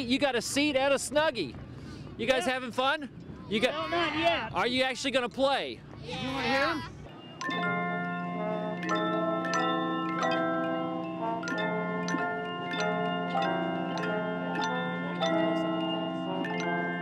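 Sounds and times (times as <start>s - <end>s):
handchime choir playing: 7.1s - 17.0s
low chime note: 7.2s - 17.0s.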